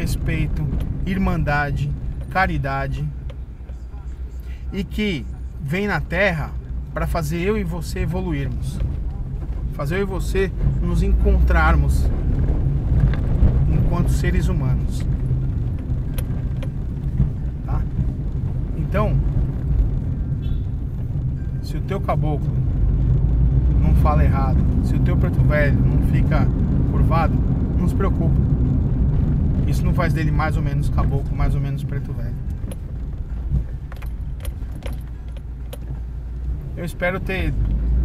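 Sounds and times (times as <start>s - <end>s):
light clicks and rattles: 0.0s - 4.6s, 11.5s - 20.2s, 30.1s - 37.8s
engine and tyre rumble: 0.0s - 38.0s.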